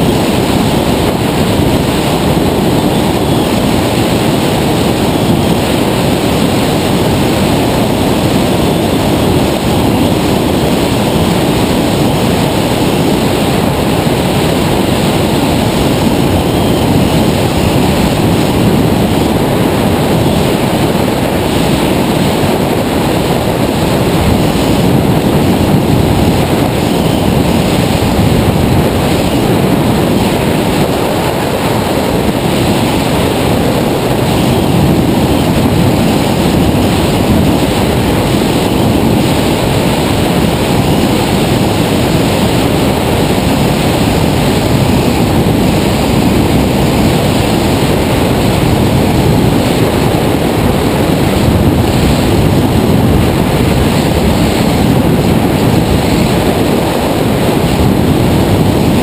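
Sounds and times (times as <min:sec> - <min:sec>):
loud wind rush on microphone: 0:00.0 - 0:59.0.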